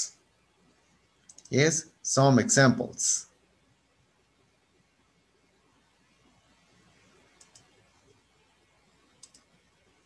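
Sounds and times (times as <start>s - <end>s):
room hiss: 0.0s - 10.0s
computer mouse clicks: 1.2s - 1.6s, 7.3s - 7.8s, 9.0s - 9.7s.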